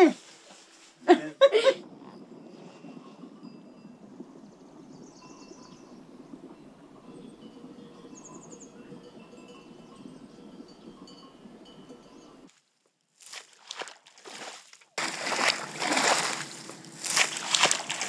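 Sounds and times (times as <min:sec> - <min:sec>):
low outdoor hum: 0:00.0 - 0:12.5, 0:15.0 - 0:18.0
clinking animal bells: 0:01.8 - 0:12.5.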